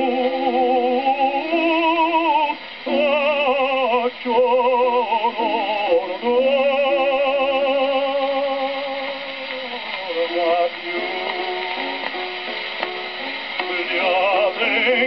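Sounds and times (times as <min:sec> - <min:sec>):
tenor singing opera: 0:00.0 - 0:12.6, 0:13.5 - 0:15.0
quiet accompaniment: 0:00.0 - 0:15.0.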